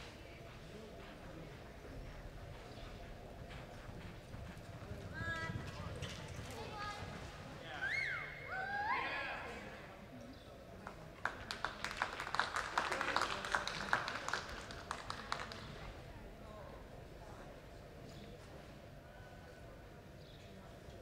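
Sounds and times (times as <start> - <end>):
hoofbeats on soft dirt: 0.0 - 7.5
scattered clapping: 10.8 - 15.9.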